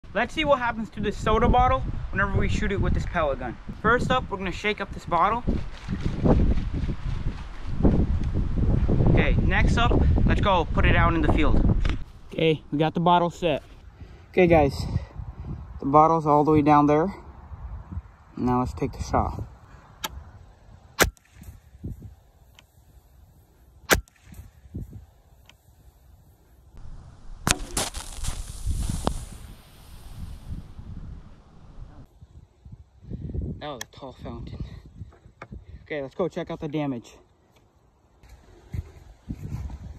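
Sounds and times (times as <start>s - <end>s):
wind buffeting microphone: 0.0s - 22.3s, 24.3s - 25.2s, 26.8s - 35.9s, 38.4s - 39.9s
air rifle firing: 23.9s - 24.5s
sharp hit on bottle: 27.4s - 29.2s
soda spraying with fizzing hiss: 27.7s - 30.8s.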